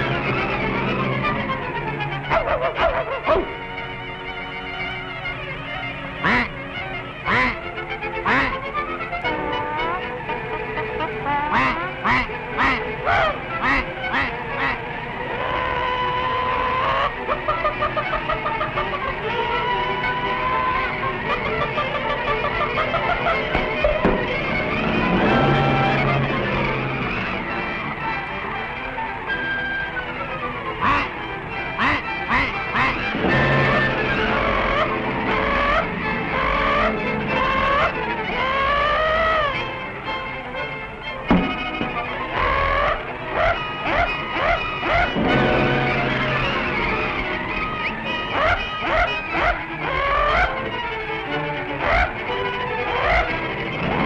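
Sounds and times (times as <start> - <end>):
music: 0.0 - 54.0
orchestral score: 0.0 - 54.0
cartoon duck quacking: 2.3 - 3.5, 6.2 - 6.6, 7.2 - 8.6, 9.3 - 10.1, 10.9 - 19.6, 30.8 - 31.2, 31.8 - 39.5, 42.3 - 45.6, 48.3 - 50.7, 51.8 - 53.4.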